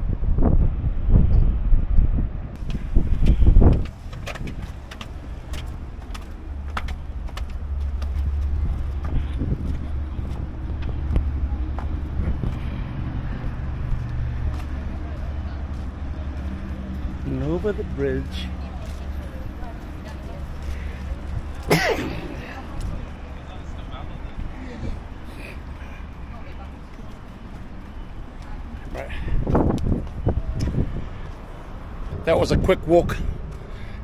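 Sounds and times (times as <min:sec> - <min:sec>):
low hum of road traffic: 0:00.0 - 0:34.0
wind buffeting microphone: 0:00.0 - 0:34.0.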